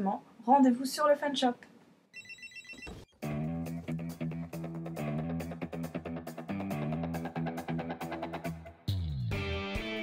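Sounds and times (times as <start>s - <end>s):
music with low bass notes: 3.2s - 10.0s.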